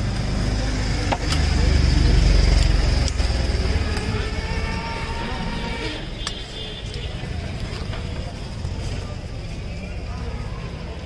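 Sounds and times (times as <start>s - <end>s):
low traffic rumble: 0.0s - 11.0s
voices in the background: 0.2s - 11.0s.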